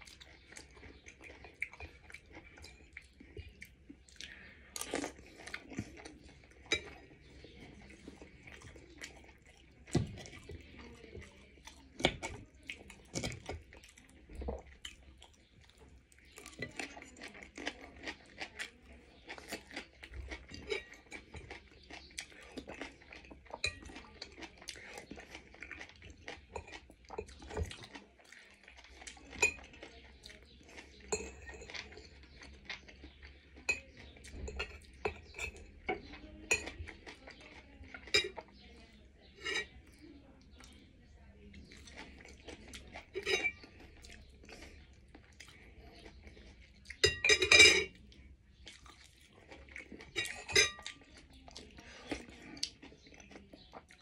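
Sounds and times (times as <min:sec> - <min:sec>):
cutlery clatter: 0:06.6 - 0:07.1, 0:20.2 - 0:21.6, 0:33.7 - 0:36.9, 0:38.0 - 0:38.5, 0:39.4 - 0:39.7, 0:43.0 - 0:43.6, 0:47.0 - 0:48.0, 0:50.1 - 0:50.9
cutlery clinking on ceramic bowl: 0:06.6 - 0:07.2, 0:20.2 - 0:21.6, 0:26.4 - 0:27.9, 0:29.3 - 0:29.8, 0:31.1 - 0:32.4, 0:33.6 - 0:37.2, 0:38.0 - 0:38.6, 0:39.3 - 0:39.7, 0:43.0 - 0:43.7, 0:47.0 - 0:48.0, 0:50.1 - 0:51.0.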